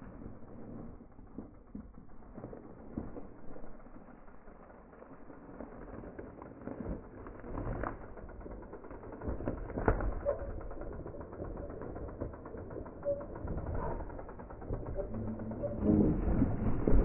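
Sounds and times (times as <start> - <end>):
bike tyres rumbling on rocks: 0.0 - 17.0.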